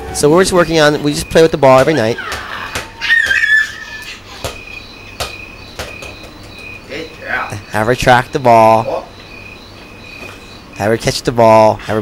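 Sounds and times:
toddler squealing: 1.6s - 4.5s
ball bouncing on tiled floor: 1.7s - 6.8s.

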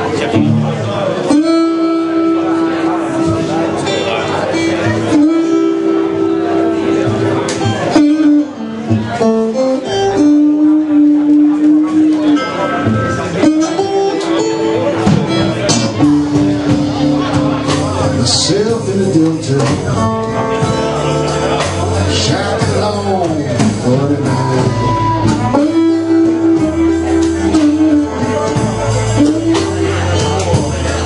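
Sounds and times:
acoustic guitar accompaniment: 0.0s - 31.0s
harmonica held notes: 1.3s - 18.2s, 23.7s - 31.0s.

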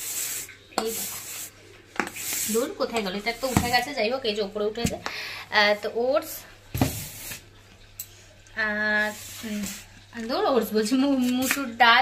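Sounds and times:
plastic jars scraping: 0.8s - 4.0s, 9.0s - 11.8s.

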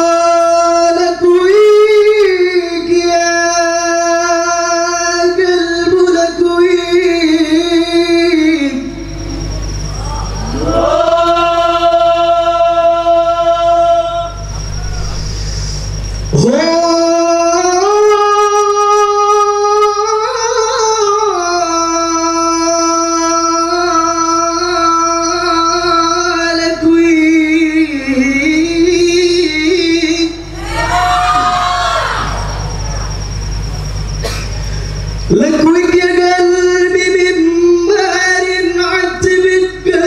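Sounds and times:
man singing through a sound system: 0.0s - 9.1s, 10.0s - 14.8s, 16.3s - 30.6s, 35.3s - 40.0s
low hum: 6.4s - 18.8s, 28.4s - 37.7s
steady high-pitched tone: 7.3s - 18.8s, 29.6s - 36.2s.

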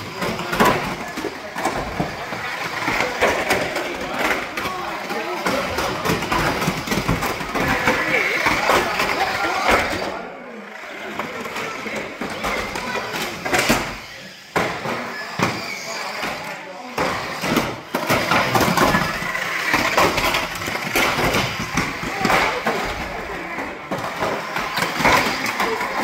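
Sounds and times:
toy cars knocking on wooden boards: 0.0s - 10.1s, 11.2s - 26.0s
voices echoing in a hall: 0.0s - 26.0s.

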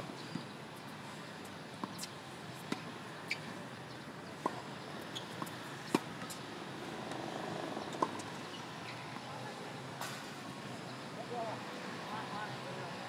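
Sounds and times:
tennis ball bouncing: 1.8s - 3.6s, 4.3s - 6.4s, 7.0s - 8.5s.

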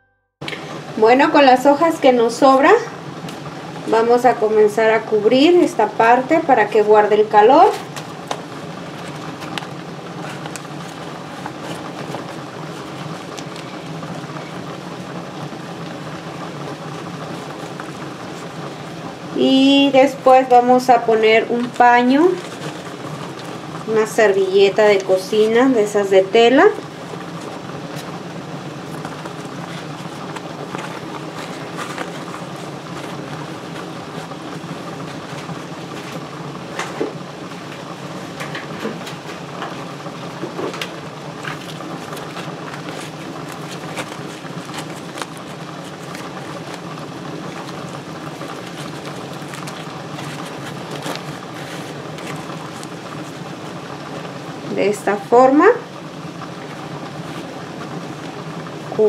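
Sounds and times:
water boiling in a pot: 7.8s - 59.0s
dry corn husks rustling: 26.9s - 38.4s, 39.4s - 54.7s.

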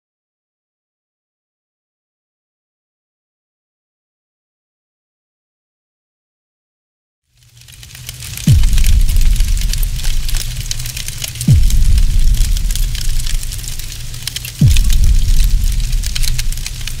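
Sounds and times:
fire-like crackling: 7.3s - 17.0s
low rumble: 8.1s - 17.0s
deep impact hits dropping in pitch: 8.5s - 10.8s, 11.4s - 17.0s.

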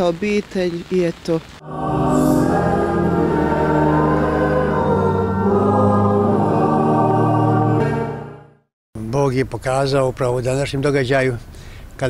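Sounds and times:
choir singing held chords: 1.6s - 8.7s.

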